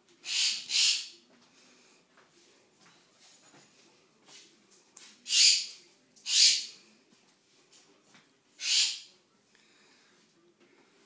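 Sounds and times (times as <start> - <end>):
pet bird harsh hissy calls: 0.2 - 1.1, 5.3 - 5.6, 6.3 - 6.7, 8.6 - 9.0.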